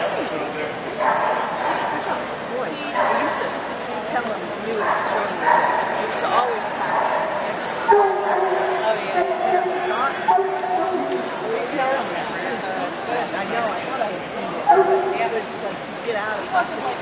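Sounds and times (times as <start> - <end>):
indistinct chatter of people: 0.0 - 17.0.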